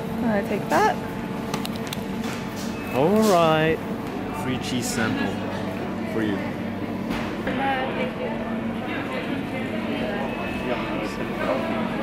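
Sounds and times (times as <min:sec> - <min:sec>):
supermarket background hum: 0:00.0 - 0:12.0.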